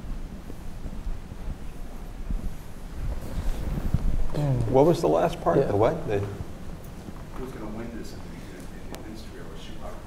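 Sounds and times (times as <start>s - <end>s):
low rumbling microphone noise: 0.0s - 10.0s.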